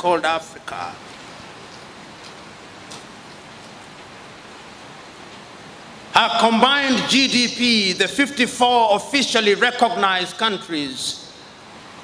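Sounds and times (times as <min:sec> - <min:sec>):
background recording hiss: 0:00.0 - 0:12.0.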